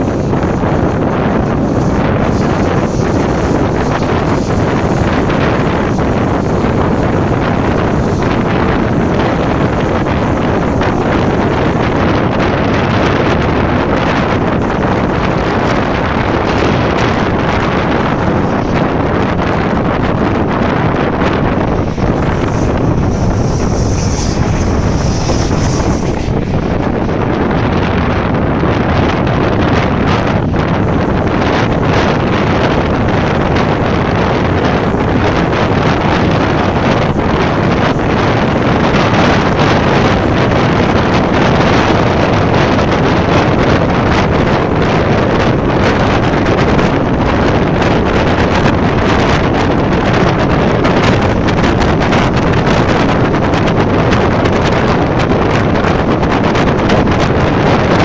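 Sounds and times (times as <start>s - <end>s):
train running noise: 0.0s - 58.0s
wind rushing over microphone: 0.0s - 58.0s.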